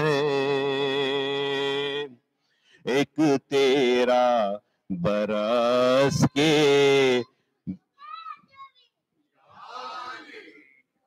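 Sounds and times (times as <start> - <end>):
man chanting devotional verse: 0.0 - 2.2, 2.8 - 7.4.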